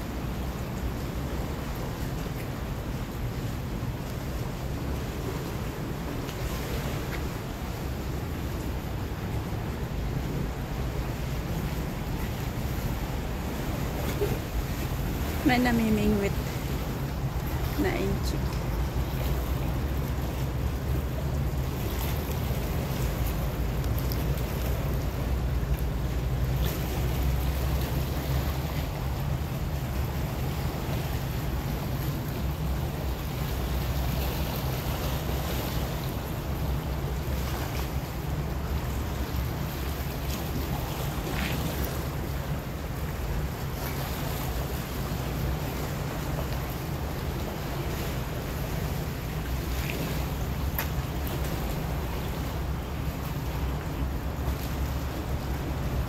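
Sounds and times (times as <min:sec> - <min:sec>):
water wash: 0:00.0 - 0:56.0
boat engine droning: 0:02.6 - 0:56.0.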